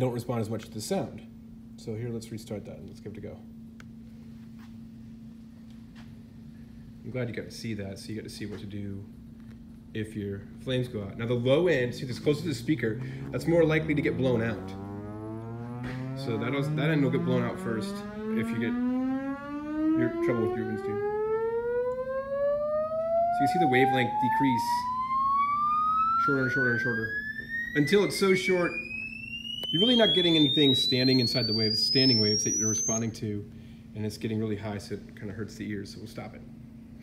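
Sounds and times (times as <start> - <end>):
steady low hum: 0.0 - 37.0
rising test tone sweep: 11.2 - 33.2.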